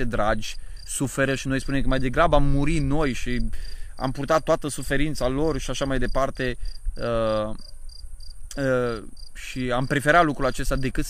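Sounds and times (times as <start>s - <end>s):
crickets chirping: 0.0s - 11.0s
man's hesitation sounds: 8.5s - 10.0s.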